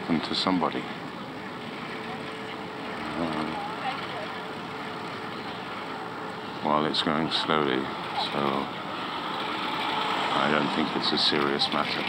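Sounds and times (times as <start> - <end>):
bicycle riding wind and tyres: 0.0 - 12.0
faint voices: 0.0 - 12.0.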